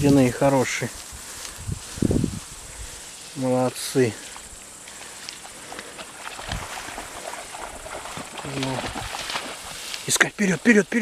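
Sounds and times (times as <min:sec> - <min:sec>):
footsteps through tall grass: 0:00.0 - 0:11.0.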